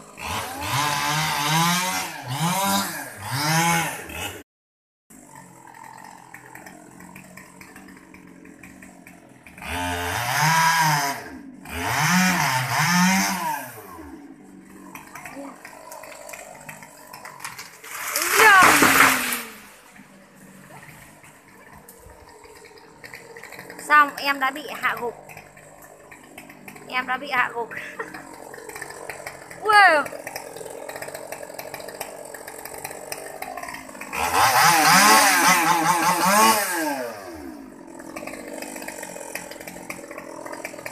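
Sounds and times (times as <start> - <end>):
chainsaw revving and cutting: 0.0 - 4.5, 5.1 - 40.9
tree falling with crashing branches: 14.7 - 23.9.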